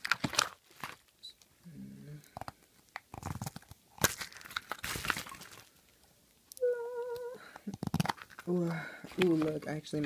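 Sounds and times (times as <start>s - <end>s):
plastic capsules crinkling: 0.0s - 1.5s, 2.2s - 10.0s
person humming: 6.6s - 7.8s.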